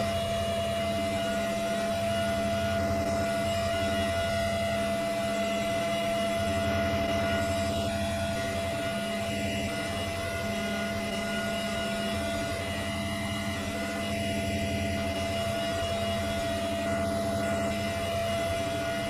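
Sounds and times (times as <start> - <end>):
steady hum with constant tones: 0.0 - 19.0.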